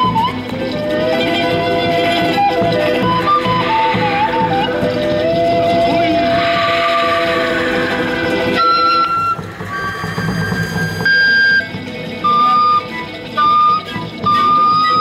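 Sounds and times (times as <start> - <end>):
folk ensemble playing: 0.0 - 15.0
wind instrument long high notes: 0.0 - 15.0.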